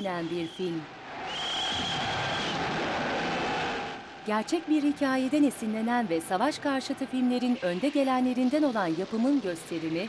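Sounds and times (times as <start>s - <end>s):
battle roar: 1.1s - 5.4s.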